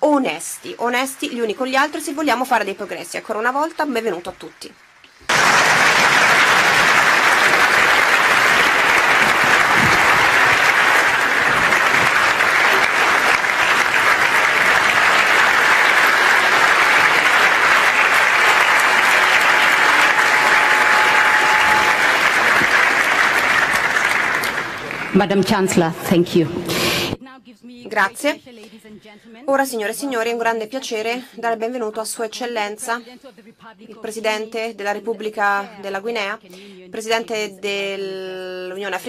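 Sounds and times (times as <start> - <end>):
audience applauding: 0.6 - 25.5.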